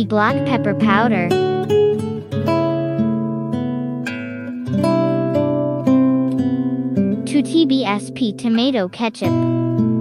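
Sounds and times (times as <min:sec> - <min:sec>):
acoustic guitar chords: 0:00.0 - 0:10.0.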